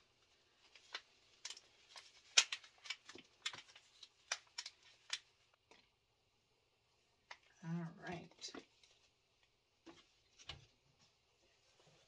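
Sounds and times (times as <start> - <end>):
plastic tray crackling and clicking: 0.8 - 5.9.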